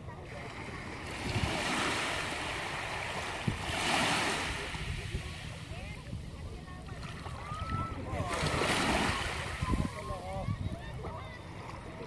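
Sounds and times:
wave lapping on sand: 0.1s - 12.0s.

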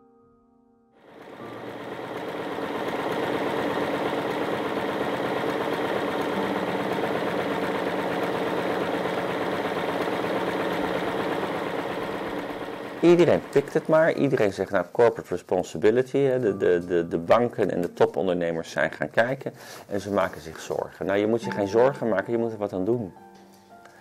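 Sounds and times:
electric sewing machine stitching: 1.0s - 14.6s.

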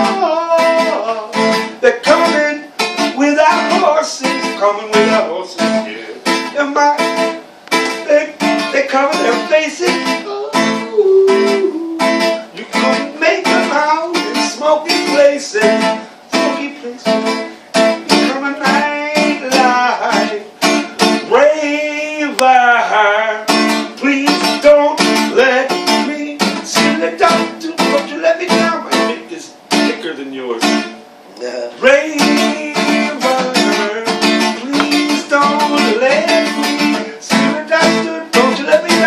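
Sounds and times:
man singing: 0.0s - 30.0s, 31.5s - 39.0s
acoustic guitar strumming: 0.0s - 39.0s.

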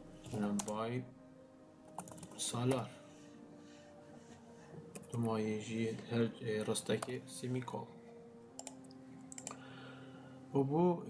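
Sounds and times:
computer clicks: 0.3s - 0.8s, 1.9s - 2.8s, 8.6s - 9.6s.

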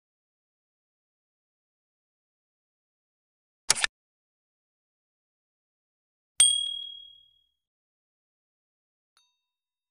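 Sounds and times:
bright ding: 6.4s - 7.4s.

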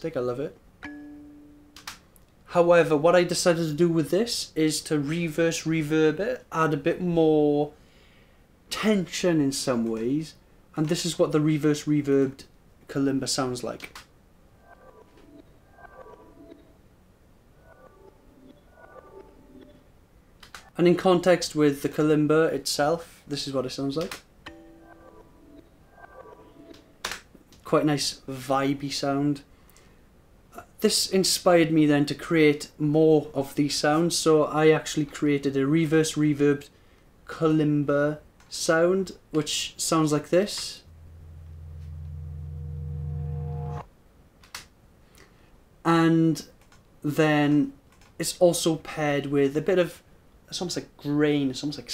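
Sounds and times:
reversed kalimba notes: 40.9s - 43.8s.

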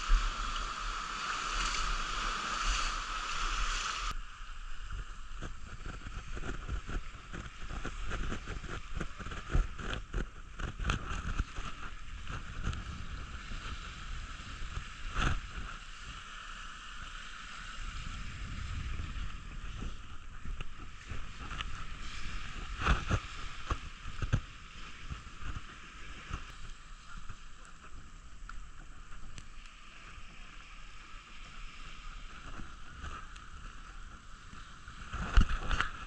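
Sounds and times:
waves washing onto beach: 0.0s - 36.0s
wind on microphone: 0.0s - 36.0s.

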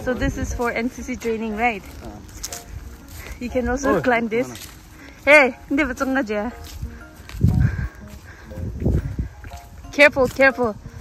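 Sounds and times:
person speaking: 3.4s - 4.7s.

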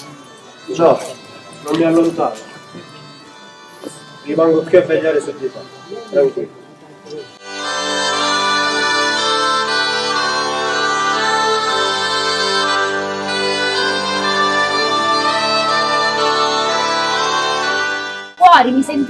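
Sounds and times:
bagpipe playing slow melody: 0.0s - 19.0s.

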